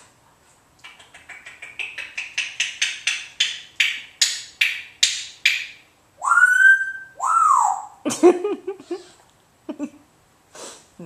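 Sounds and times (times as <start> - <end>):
parrot tongue clicks: 0.8 - 5.6
parrot whistled notes: 6.2 - 8.0.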